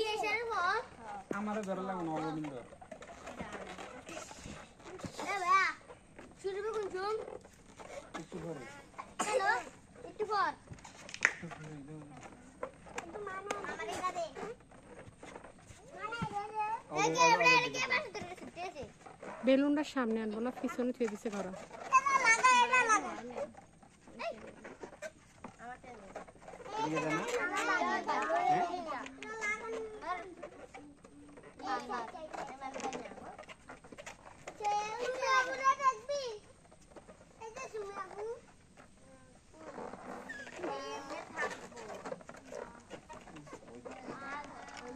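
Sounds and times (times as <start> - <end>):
faint background noise: 0.0 - 44.9
voices: 0.0 - 44.9.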